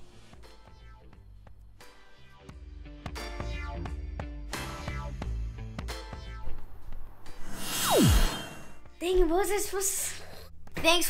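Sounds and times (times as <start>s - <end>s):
background music: 0.0s - 11.0s
whoosh transition effect: 7.2s - 8.8s.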